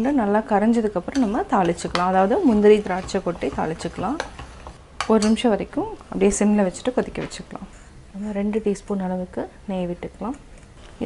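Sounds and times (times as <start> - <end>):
woman speaking: 0.0 - 4.3, 5.0 - 10.4
ladle stirring in steel pot: 1.0 - 5.4.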